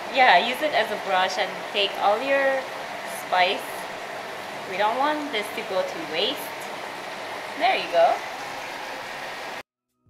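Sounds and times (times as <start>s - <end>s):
steady hiss: 0.0s - 9.6s.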